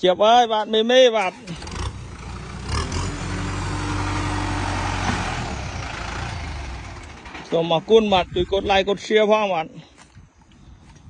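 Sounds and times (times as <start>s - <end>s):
tractor diesel engine running: 1.2s - 9.1s.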